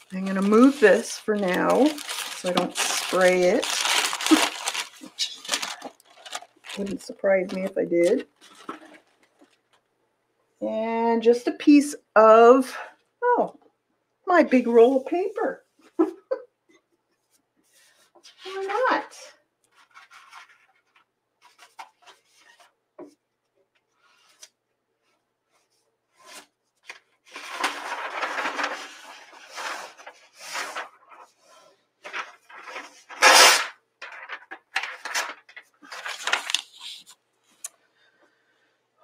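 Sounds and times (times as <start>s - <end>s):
paper rustling and crinkling: 0.0s - 9.9s, 19.7s - 22.8s, 25.6s - 37.2s.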